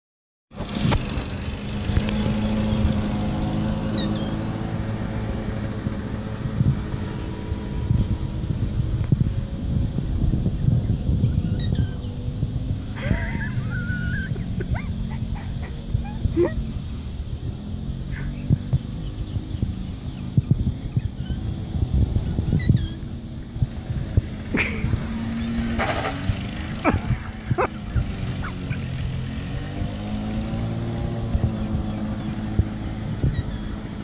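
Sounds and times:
lawn mower engine cutting grass: 0.5 - 34.0.

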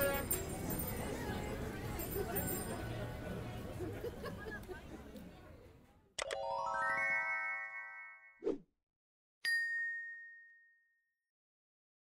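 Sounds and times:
bright bell ding: 9.4 - 11.0.

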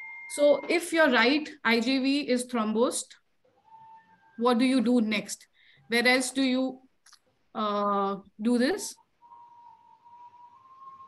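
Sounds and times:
faint whistle-like tone: 9.1 - 11.0.

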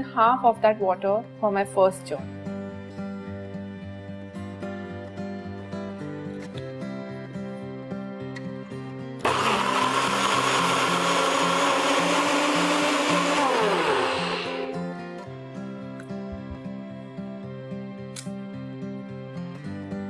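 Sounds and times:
background music: 0.0 - 20.0
blender grinding: 9.2 - 15.0.

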